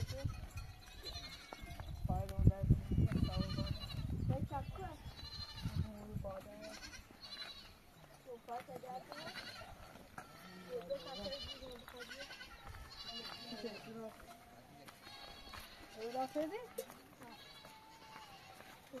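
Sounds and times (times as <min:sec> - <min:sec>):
goats and sheep bleating: 0:00.0 - 0:08.2, 0:08.9 - 0:19.0.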